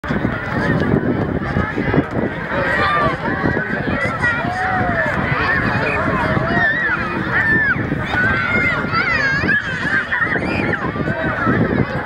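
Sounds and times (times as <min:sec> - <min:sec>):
players and spectators shouting: 0:00.1 - 0:12.0.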